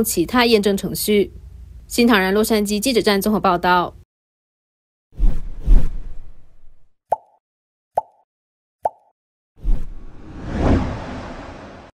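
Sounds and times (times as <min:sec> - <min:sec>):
cartoon bubbly pops: 0:07.1 - 0:07.4, 0:08.0 - 0:08.2, 0:08.8 - 0:09.1
low sound effect: 0:09.8 - 0:11.9.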